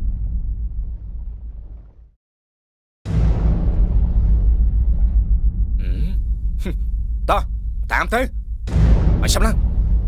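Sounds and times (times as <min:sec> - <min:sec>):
deep rumbling drone: 0:00.0 - 0:02.2, 0:03.1 - 0:10.0
sudden boom: 0:03.1 - 0:10.0.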